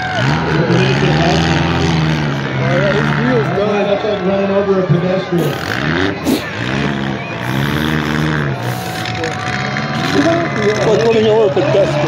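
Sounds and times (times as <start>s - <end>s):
car engines revving: 0.0s - 12.0s.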